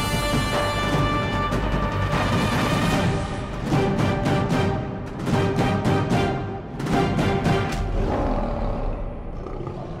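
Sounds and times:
lion roaring: 0:07.8 - 0:10.0.

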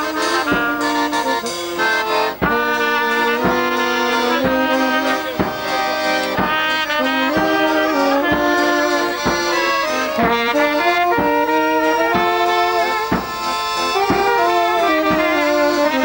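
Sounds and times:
accordion: 0:00.0 - 0:16.0
bass drum beats: 0:00.0 - 0:16.0
saxophone: 0:00.0 - 0:16.0
trumpet: 0:00.0 - 0:16.0.

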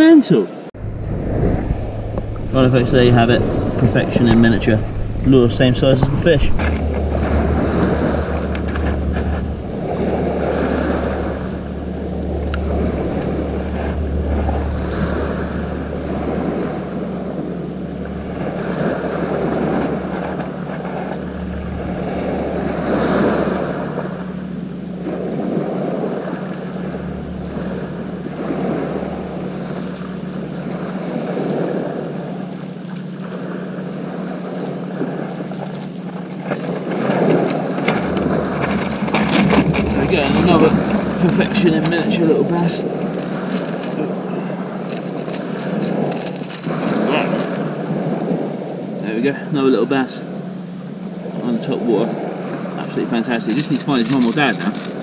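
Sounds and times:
waves washing on shingle beach: 0:00.0 - 0:17.4, 0:25.0 - 0:55.0
steady low hum: 0:00.8 - 0:55.0
wind rumbling on microphone: 0:00.8 - 0:55.0.

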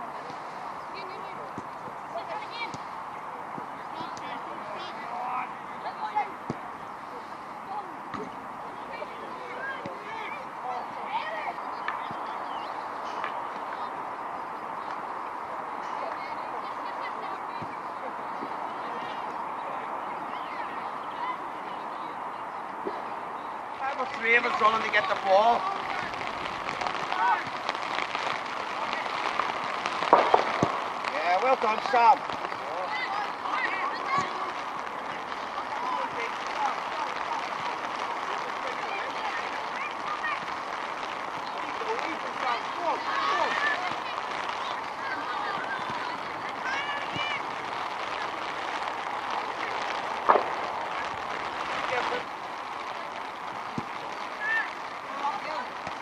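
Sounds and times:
distant shouted calls: 0:00.0 - 0:56.0
outdoor noise: 0:00.0 - 0:56.0
steady background hiss: 0:00.0 - 0:56.0.

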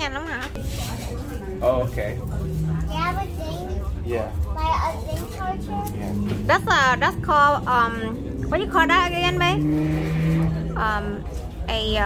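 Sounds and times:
conversational speech: 0:00.9 - 0:09.7.

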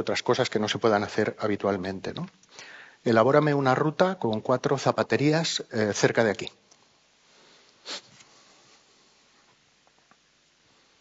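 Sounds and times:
short sniff: 0:07.4 - 0:08.9.

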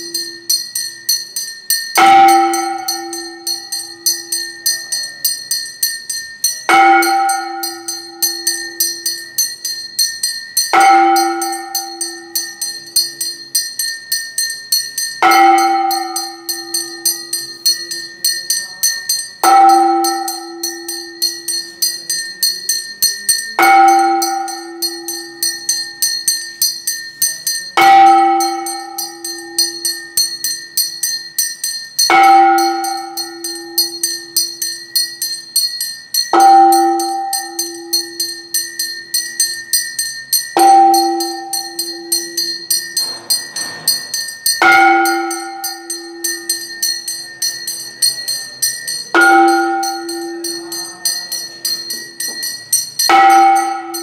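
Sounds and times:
deep temple bell ringing: 0:00.0 - 0:54.0
small hand bell ringing: 0:00.0 - 0:54.0.

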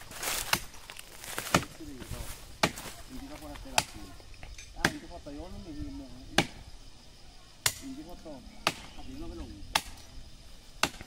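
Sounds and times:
machete chopping into wood: 0:00.2 - 0:01.8, 0:02.6 - 0:03.0, 0:04.8 - 0:05.0, 0:06.4 - 0:06.6, 0:07.6 - 0:07.9, 0:08.6 - 0:09.0, 0:09.7 - 0:10.1, 0:10.8 - 0:11.0.

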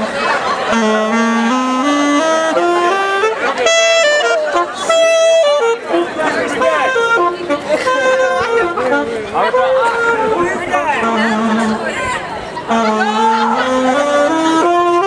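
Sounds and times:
saxophone playing slow melody: 0:00.0 - 0:11.9, 0:12.6 - 0:15.0
crowd talking: 0:00.0 - 0:15.0.

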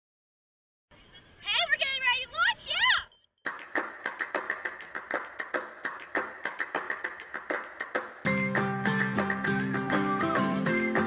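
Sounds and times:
girl shouting excitedly: 0:01.4 - 0:03.1
sharp claps or clicks: 0:03.4 - 0:11.0.

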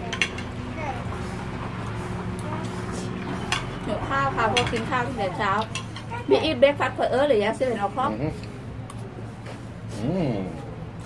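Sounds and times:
cutlery clinking on plates: 0:05.6 - 0:06.2.

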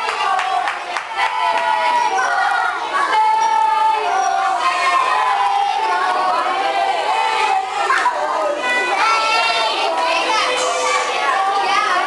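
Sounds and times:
children babbling: 0:01.6 - 0:12.0.

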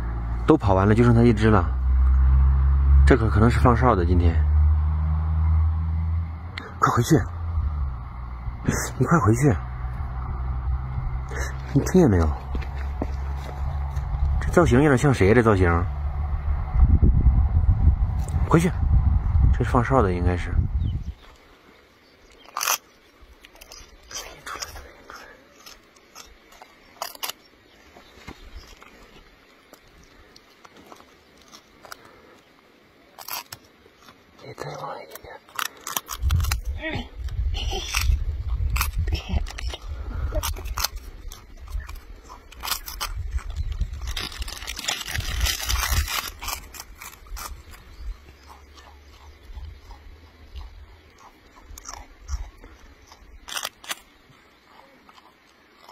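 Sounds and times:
steady low rumble: 0:00.0 - 0:21.8, 0:34.5 - 0:53.6
marmot crunching food: 0:08.4 - 0:15.5, 0:22.2 - 0:55.9.

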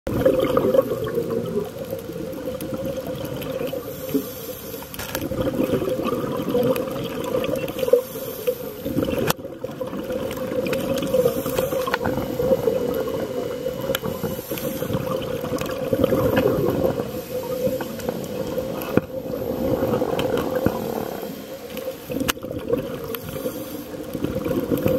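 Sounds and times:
watery bubbling: 0:00.1 - 0:04.4, 0:05.2 - 0:24.9
underwater low drone: 0:00.1 - 0:24.9.

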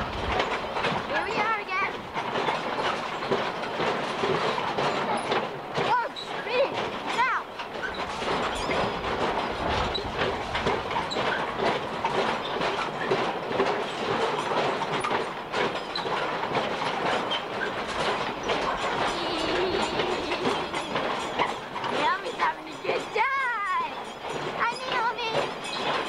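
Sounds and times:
ride car clattering along track: 0:00.0 - 0:26.0.

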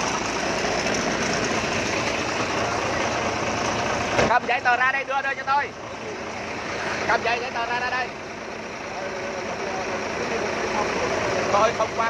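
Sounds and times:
engine running nearby: 0:00.0 - 0:12.0
roadside traffic: 0:00.0 - 0:12.0
muffled talk: 0:08.8 - 0:12.0.

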